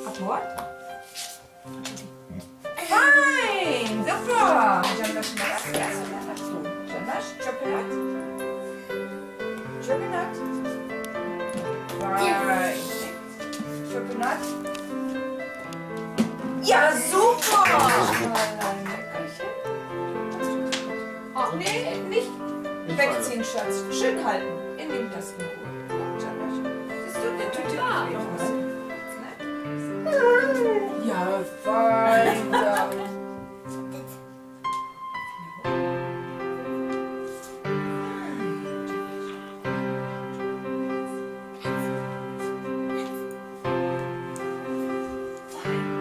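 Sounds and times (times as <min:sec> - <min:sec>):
music with long held notes: 0:00.0 - 0:46.0
dog whining: 0:30.0 - 0:31.2.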